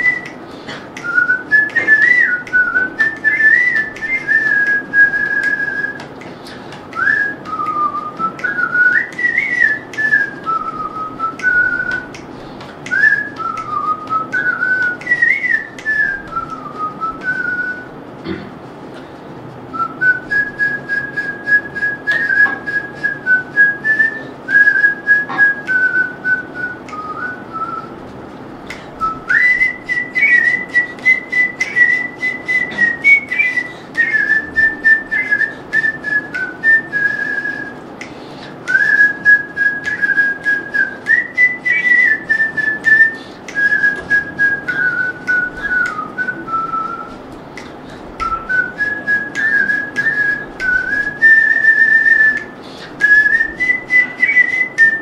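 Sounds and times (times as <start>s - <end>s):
person whistling a melody: 0.0s - 12.2s, 12.8s - 17.9s, 19.7s - 28.0s, 28.7s - 55.0s.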